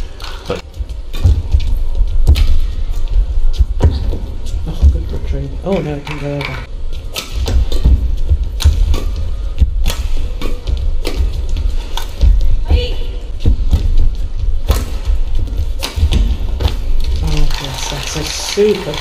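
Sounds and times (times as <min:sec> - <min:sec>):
rackets striking shuttlecock: 0:01.1 - 0:01.6, 0:07.1 - 0:12.3, 0:14.6 - 0:17.2.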